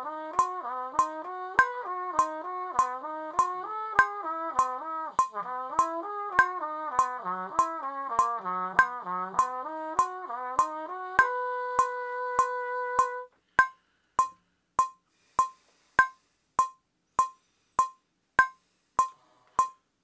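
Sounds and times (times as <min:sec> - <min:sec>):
muted trumpet playing: 0:00.0 - 0:13.3
metronome clicking: 0:00.0 - 0:19.8.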